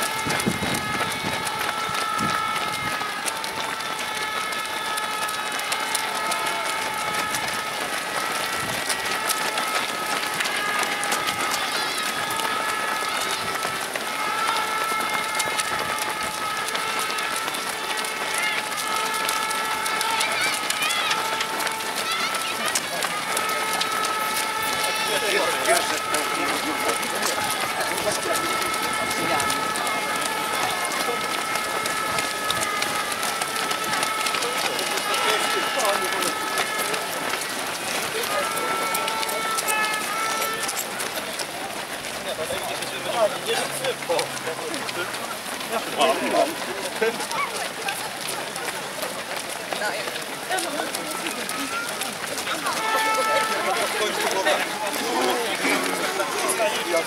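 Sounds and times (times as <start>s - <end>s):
indistinct voices: 0.0s - 57.0s
runners' footsteps on wet asphalt: 0.0s - 57.0s.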